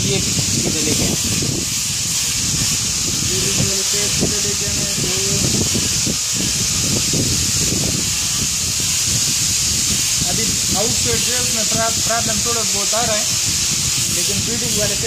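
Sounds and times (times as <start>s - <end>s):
person speaking: 0.0s - 1.2s, 3.2s - 5.6s, 10.2s - 13.4s, 14.1s - 15.0s
steady hiss: 0.0s - 15.0s.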